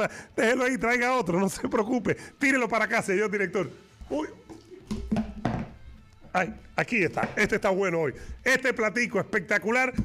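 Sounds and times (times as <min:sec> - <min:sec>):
plastic dish thunking on desk: 0:04.5 - 0:05.8, 0:07.1 - 0:07.6.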